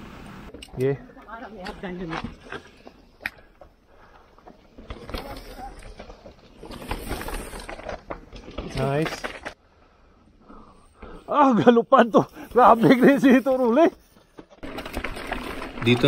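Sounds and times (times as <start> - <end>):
bike tyres crunching on dirt trail: 0.2 - 16.0
voices: 0.7 - 2.4, 4.0 - 6.7, 11.1 - 14.0.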